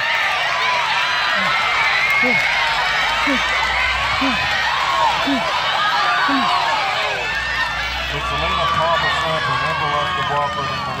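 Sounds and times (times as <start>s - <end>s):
spectators yelling and cheering: 0.0s - 11.0s
man calling out: 4.2s - 4.5s, 5.2s - 5.5s, 6.3s - 6.5s.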